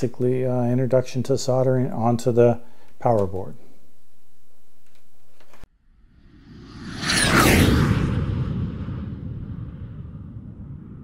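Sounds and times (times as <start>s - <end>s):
low rumble: 6.0s - 11.0s
whoosh sound effect: 6.2s - 11.0s.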